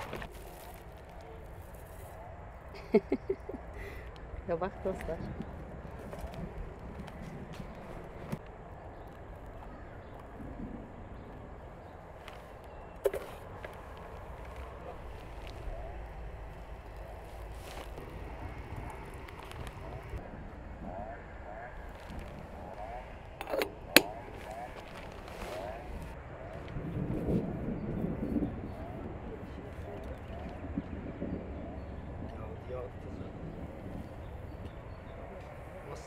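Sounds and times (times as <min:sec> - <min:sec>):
outdoor ambience: 0:00.0 - 0:36.0.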